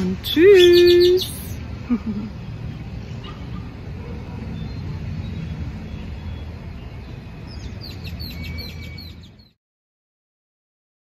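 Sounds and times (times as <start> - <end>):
bird chirping rapidly: 0.2 - 1.6, 4.5 - 9.6.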